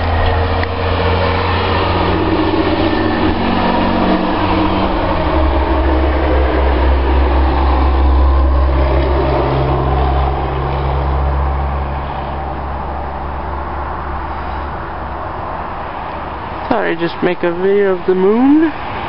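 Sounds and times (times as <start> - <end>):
vehicle engine running: 0.0 - 18.5.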